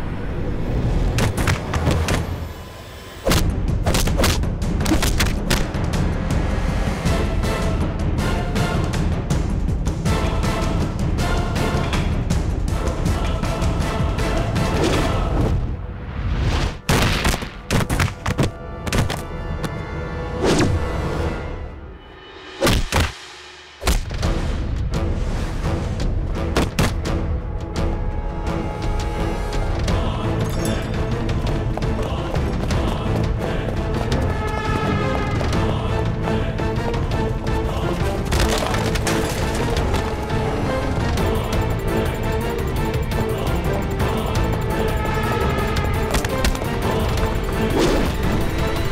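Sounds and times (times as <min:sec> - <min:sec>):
background music: 0:00.0 - 0:48.9
film background score: 0:00.0 - 0:48.9
splintering crash: 0:38.3 - 0:40.2.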